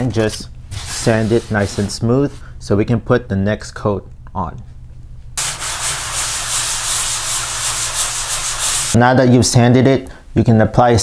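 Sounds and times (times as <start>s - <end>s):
sandpaper rasping on drywall: 0.8s - 2.0s, 5.4s - 9.0s.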